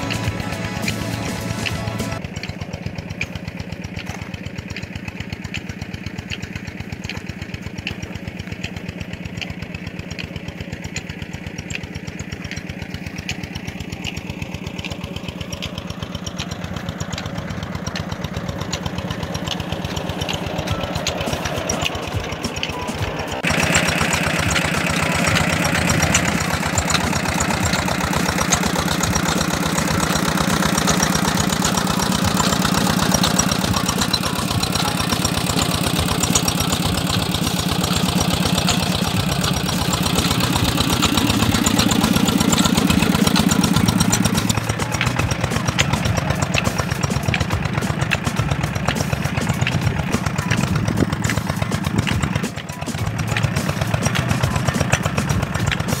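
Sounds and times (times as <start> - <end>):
diesel engine running: 0.0 - 56.0.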